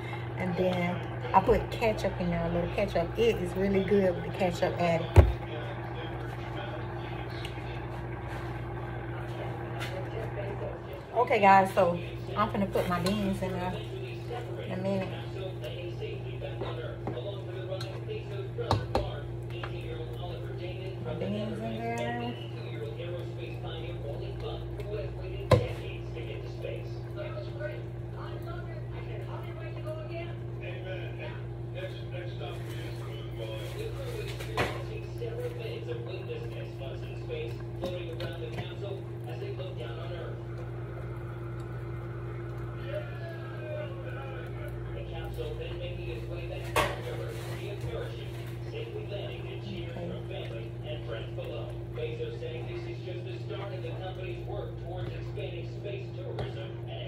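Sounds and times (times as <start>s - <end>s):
faint voices: 0.0s - 57.0s
low hum: 0.0s - 57.0s.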